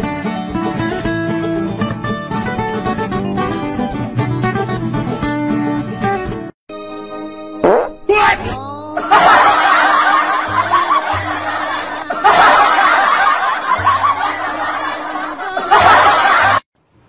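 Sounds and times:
background music: 0.0s - 16.5s
people snickering and laughing: 9.0s - 16.6s.

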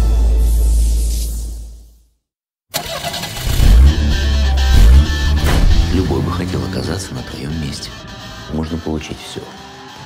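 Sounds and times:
car engine starting and revving: 2.7s - 7.8s.

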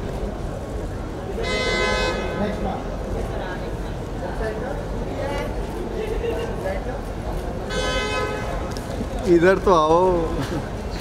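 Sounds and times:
crowd of voices: 0.0s - 11.0s
horn toot: 1.4s - 2.4s, 7.7s - 8.7s.

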